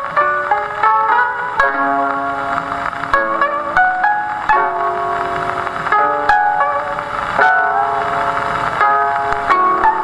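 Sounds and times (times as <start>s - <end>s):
koto music from a record: 0.0s - 10.0s.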